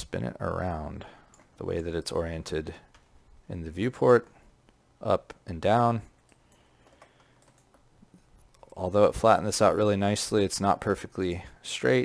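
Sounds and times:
computer keyboard clicks: 0:06.3 - 0:07.9.

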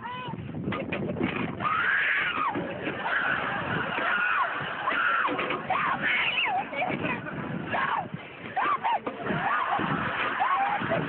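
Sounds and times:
people screaming and yelling: 0:01.5 - 0:11.0.

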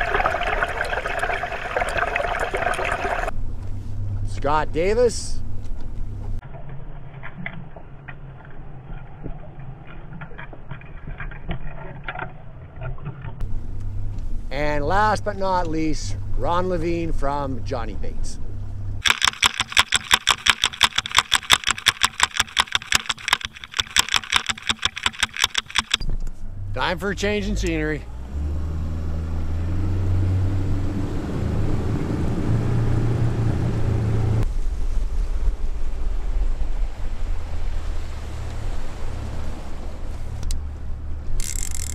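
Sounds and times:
open-air rumble: 0:00.0 - 0:19.1, 0:25.4 - 0:41.9
small clicks and ticks: 0:19.0 - 0:26.1, 0:41.4 - 0:41.9.

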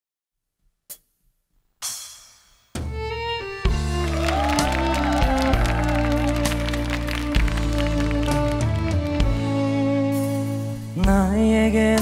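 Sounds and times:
drum and cymbal hits: 0:01.8 - 0:03.0
live band playing ballad: 0:03.0 - 0:12.0.

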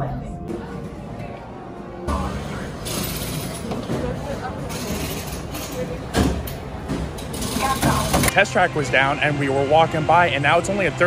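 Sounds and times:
faint voices: 0:00.0 - 0:11.0
steady rush of noise: 0:00.0 - 0:11.0.

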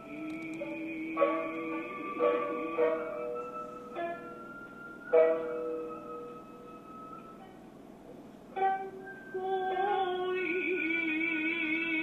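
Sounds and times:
plucked string instrument notes: 0:00.0 - 0:07.7, 0:08.5 - 0:11.3.

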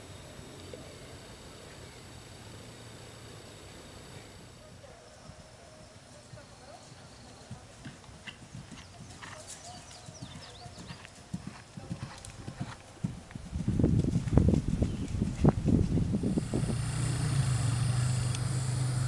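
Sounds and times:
steady low hum: 0:00.0 - 0:04.8, 0:16.1 - 0:19.0
horse galloping on grass: 0:00.0 - 0:05.4, 0:07.2 - 0:19.0.

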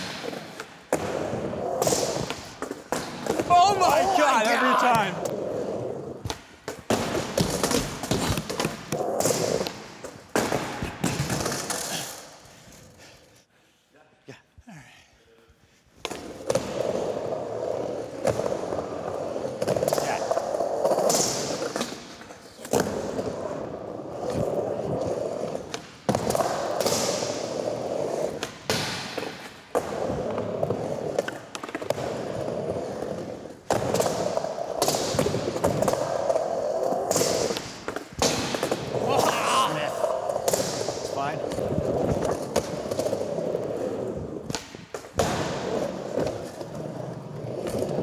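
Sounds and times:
skateboard wheels rolling on wood: 0:00.0 - 0:13.2, 0:16.0 - 0:48.0
skateboard clacks and thuds: 0:05.1 - 0:12.0, 0:24.2 - 0:39.3.

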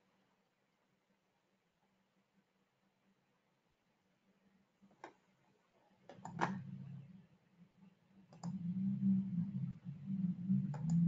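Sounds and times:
steady low hum: 0:02.4 - 0:11.0
computer mouse clicks: 0:06.1 - 0:06.6, 0:08.3 - 0:08.7, 0:10.7 - 0:11.0.

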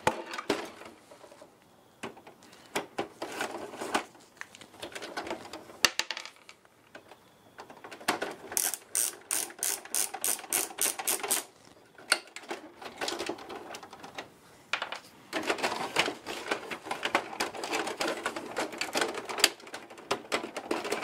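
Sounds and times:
plastic rattling: 0:00.0 - 0:21.0
plastic printer parts clicking: 0:02.0 - 0:21.0.

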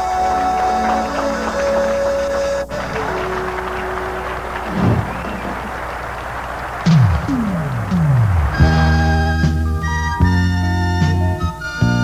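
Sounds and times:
live band with synthesizers: 0:00.0 - 0:12.0.

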